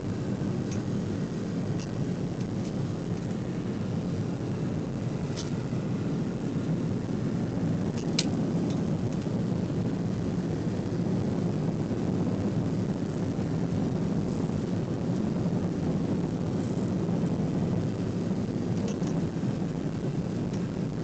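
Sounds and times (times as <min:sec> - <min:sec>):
airliner cabin engine drone: 0:00.0 - 0:21.0.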